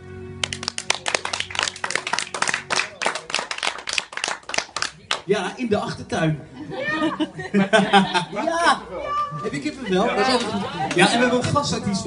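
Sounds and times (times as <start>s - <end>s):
small audience clapping: 0.4s - 5.3s.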